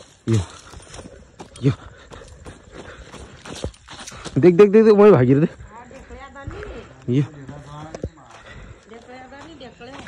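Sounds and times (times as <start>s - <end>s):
footsteps on rough ground: 0.0s - 10.0s.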